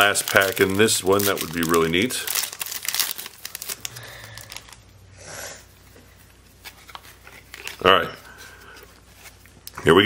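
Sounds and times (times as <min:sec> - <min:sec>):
foil pack and cards rustling: 0:00.0 - 0:04.8, 0:06.6 - 0:09.6.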